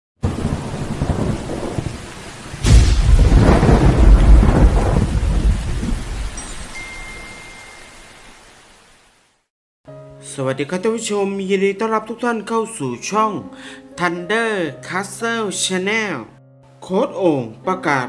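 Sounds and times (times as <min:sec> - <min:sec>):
rolling thunderclap: 0:00.2 - 0:06.4
steady rain: 0:00.2 - 0:09.5.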